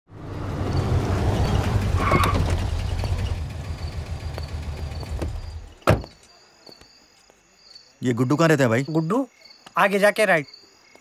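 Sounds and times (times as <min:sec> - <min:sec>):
car engine running: 0:00.2 - 0:05.7
crickets chirping: 0:00.2 - 0:11.0
car door shutting: 0:01.9 - 0:03.2, 0:05.0 - 0:06.2.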